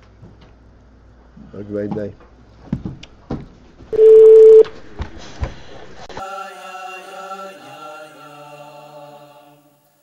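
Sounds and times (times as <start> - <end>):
loud electronic beep: 4.0 - 4.6
music with chant-like voices: 6.2 - 10.0.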